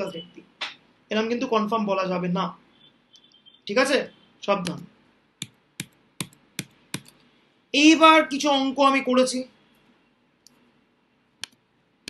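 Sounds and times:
computer mouse clicks: 5.4s - 7.3s, 11.4s - 11.6s.

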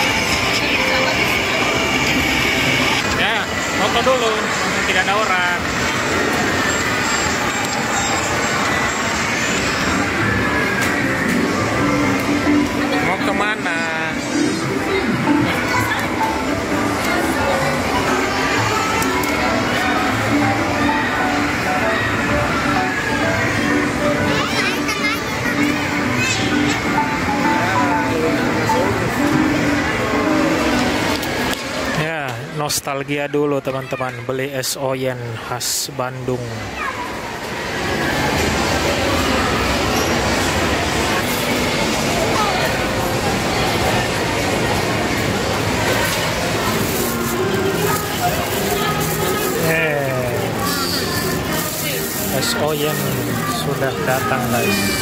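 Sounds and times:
arcade game machines din: 0.0s - 32.6s, 36.4s - 55.0s
crowd noise: 0.0s - 55.0s
children's voices: 14.3s - 31.9s, 36.5s - 55.0s.

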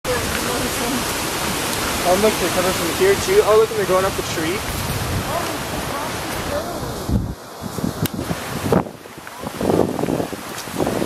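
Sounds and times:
faint voices talking: 0.0s - 7.2s
steady rushing hiss: 0.1s - 11.0s.

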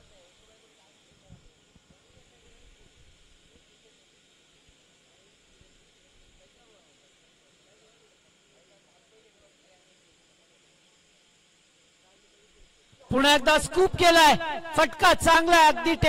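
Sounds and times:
faint distant voices: 0.0s - 11.2s
faint steady hiss: 0.0s - 16.0s.

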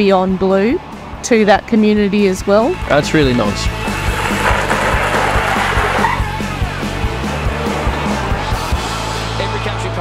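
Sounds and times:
background music with beat: 2.2s - 10.0s
car accelerating away: 2.8s - 8.8s.

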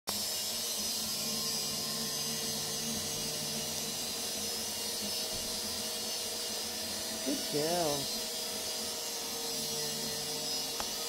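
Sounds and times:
power tool cutting pipe: 0.1s - 11.0s.

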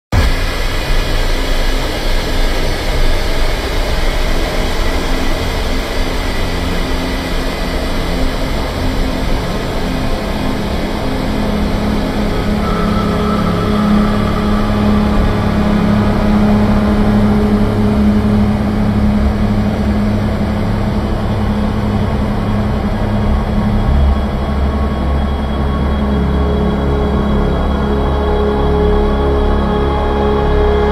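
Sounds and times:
ambient electronic music: 0.1s - 30.9s
low drone: 0.1s - 30.9s
sustained low tone: 0.1s - 30.9s.

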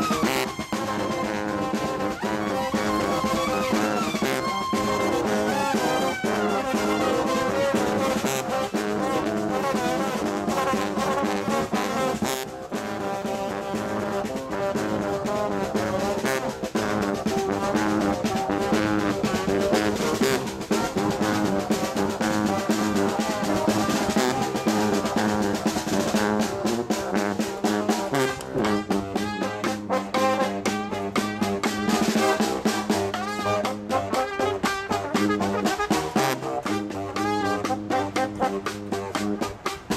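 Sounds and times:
brass band playing marching music: 0.0s - 39.9s.

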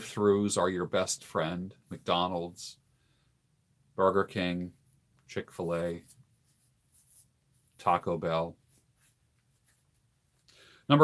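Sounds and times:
man talking: 0.0s - 2.8s, 4.0s - 6.2s, 7.8s - 8.6s.

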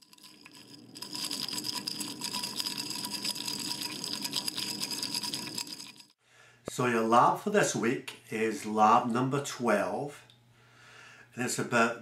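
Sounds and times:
ice slush rattling when stirred: 0.0s - 6.2s.

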